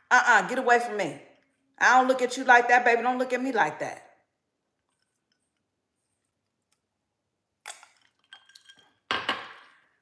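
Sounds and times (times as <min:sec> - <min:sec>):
glass clinking on hard surface: 0:07.7 - 0:09.8.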